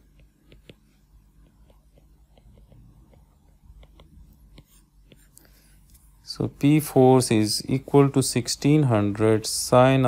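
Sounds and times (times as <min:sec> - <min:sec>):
stylus ticking on tablet screen: 0:00.0 - 0:05.4.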